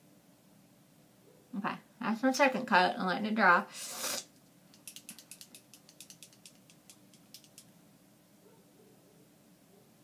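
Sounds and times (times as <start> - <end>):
faint sharp clicks: 4.7 - 7.7.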